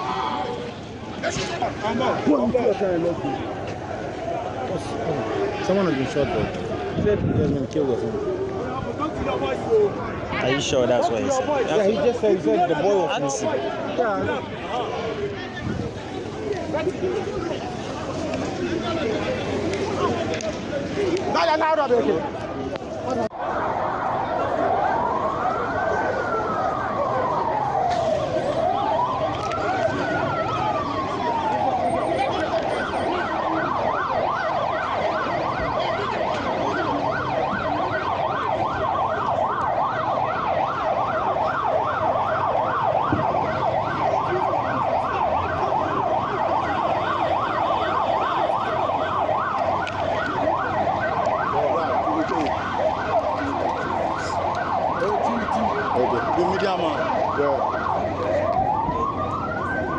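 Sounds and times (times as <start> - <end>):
vehicle siren wailing and yelping: 0.0 - 59.9.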